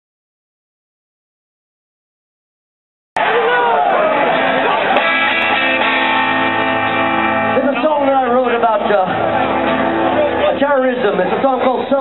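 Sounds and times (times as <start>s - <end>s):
electric guitar chord ringing: 3.8s - 11.5s
man talking: 7.5s - 9.2s, 10.1s - 12.0s.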